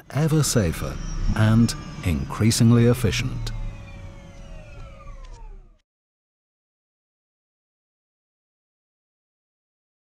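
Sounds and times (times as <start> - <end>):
helicopter rotor rumble: 0.0 - 5.8
helicopter turbine whine: 0.0 - 5.8.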